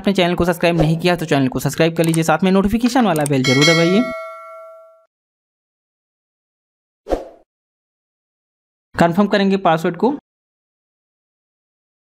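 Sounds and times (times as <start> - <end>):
notification bell ding: 3.4 - 5.1.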